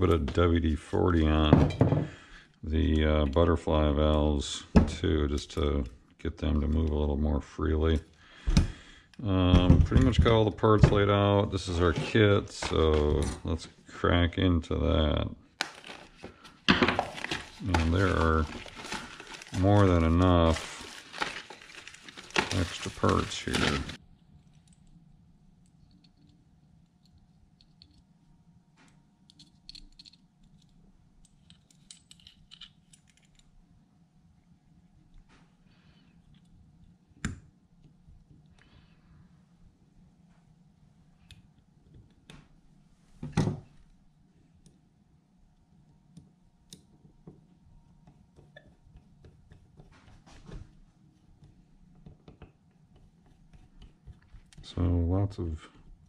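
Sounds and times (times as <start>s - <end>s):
faint steady hum: 0.0s - 56.0s
small metal parts clicking: 29.3s - 33.5s.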